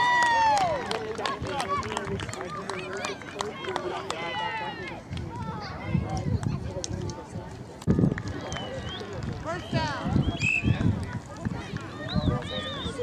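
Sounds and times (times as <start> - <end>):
children and adults calling out: 9.6 - 13.0.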